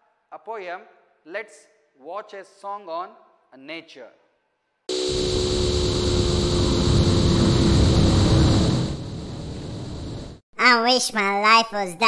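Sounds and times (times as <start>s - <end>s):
loud rushing noise: 4.9s - 10.4s
low hum: 4.9s - 10.4s.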